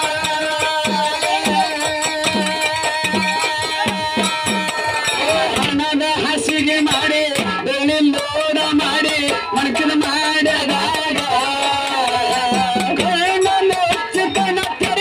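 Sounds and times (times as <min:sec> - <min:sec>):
man singing into a microphone: 0:00.0 - 0:15.0
steady drumming: 0:00.0 - 0:15.0.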